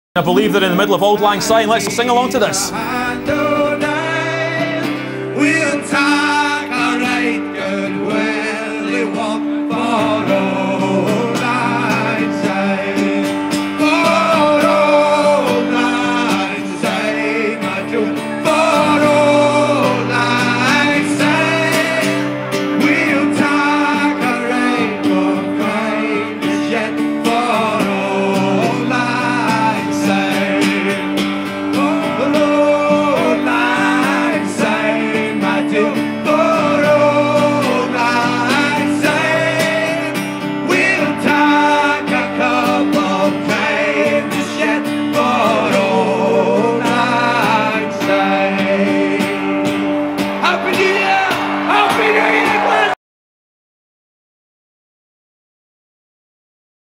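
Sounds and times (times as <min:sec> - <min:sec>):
person singing: 0:00.2 - 0:52.9
guitar: 0:00.2 - 0:53.0.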